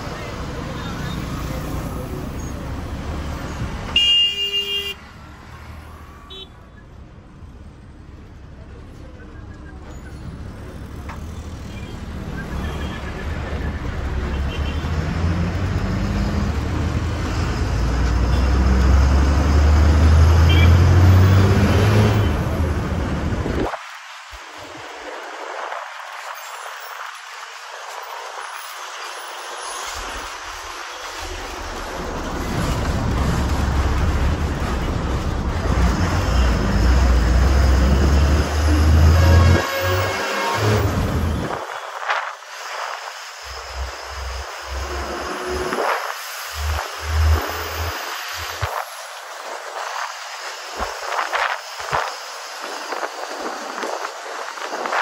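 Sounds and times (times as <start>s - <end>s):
bus engine and road noise: 0.0s - 55.0s.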